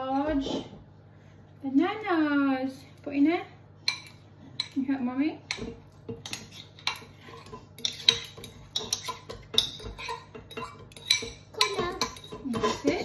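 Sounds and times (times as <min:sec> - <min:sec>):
fork clinking against ceramic bowl: 0:05.5 - 0:13.0.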